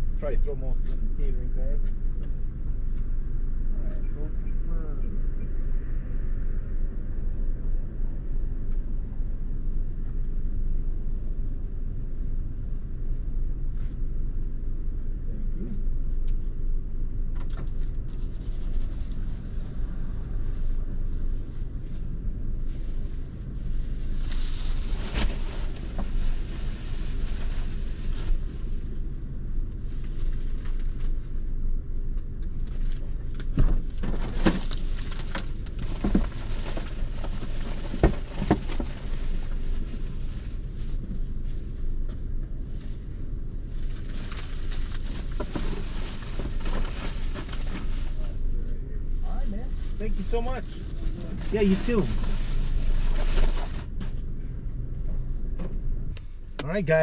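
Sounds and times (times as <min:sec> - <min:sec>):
car engine idling: 0:00.0 - 0:57.0
grocery bags rustling and knocking: 0:33.5 - 0:39.7, 0:44.0 - 0:48.3.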